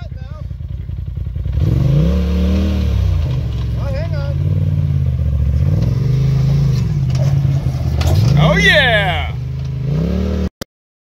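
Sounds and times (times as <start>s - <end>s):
off-road vehicle engine revving: 0.0s - 10.6s.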